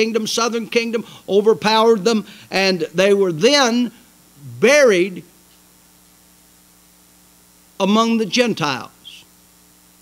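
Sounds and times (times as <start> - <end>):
man's voice: 0.0 - 5.2, 7.8 - 9.2
electrical mains hum: 0.0 - 10.0.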